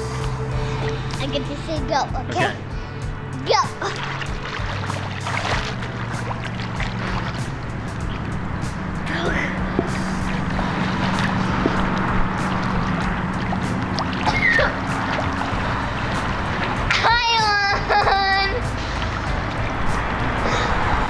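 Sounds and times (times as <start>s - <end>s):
water splashing and churning: 0.0s - 21.0s.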